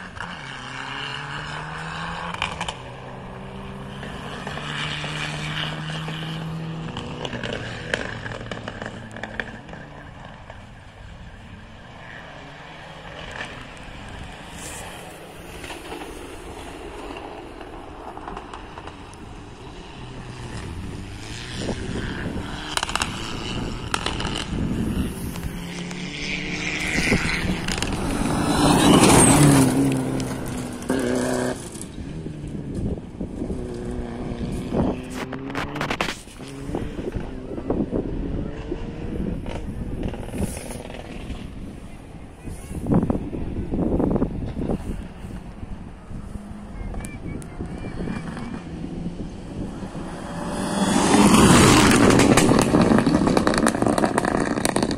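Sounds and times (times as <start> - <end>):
rally car engine passing: 0.0 - 54.9.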